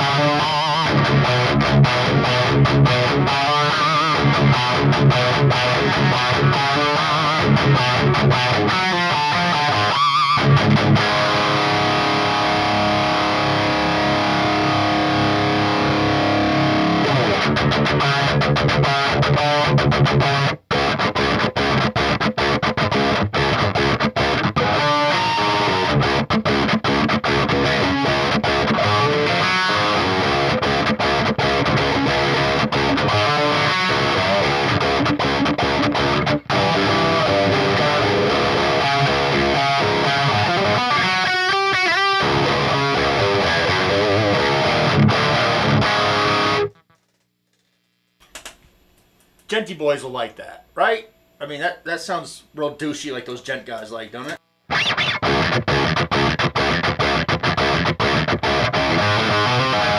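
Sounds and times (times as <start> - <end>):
distorted electric guitar riffing: 0.0 - 47.2, 50.7 - 59.9.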